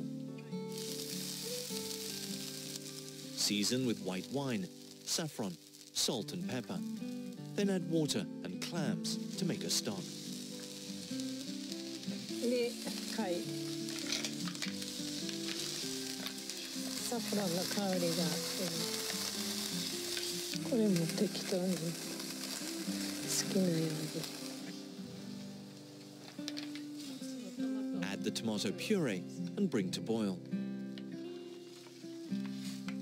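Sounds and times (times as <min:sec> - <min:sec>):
clams sizzling in oil: 0:00.0 - 0:28.7, 0:30.7 - 0:33.0
quiet background music: 0:00.0 - 0:33.0.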